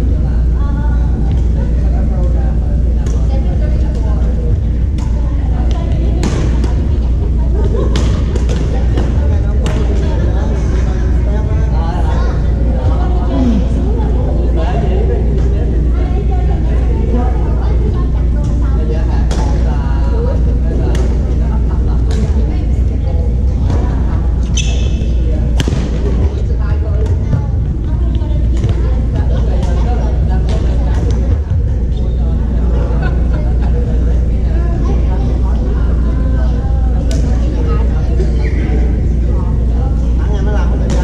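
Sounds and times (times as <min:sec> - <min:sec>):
loud low hum: 0:00.0 - 0:41.0
low rumble of room noise: 0:00.0 - 0:41.0
voices around hall: 0:00.0 - 0:41.0.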